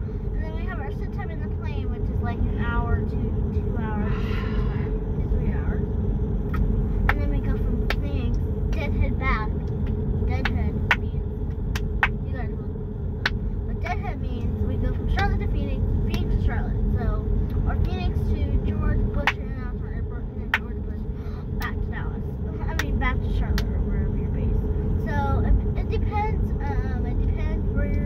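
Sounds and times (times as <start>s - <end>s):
car road and engine rumble: 0.0s - 28.0s.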